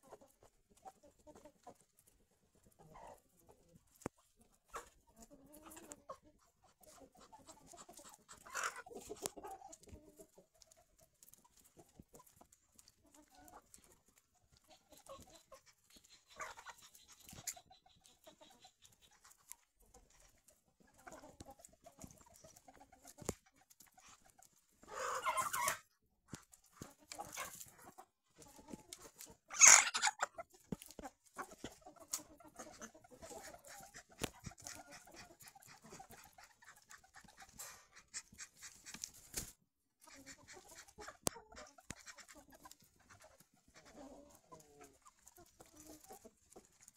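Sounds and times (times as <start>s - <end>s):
chickens clucking: 0.0s - 46.9s.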